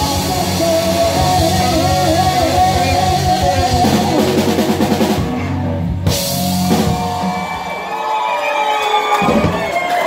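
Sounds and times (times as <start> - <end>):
audience cheering and whooping: 6.1 - 10.0.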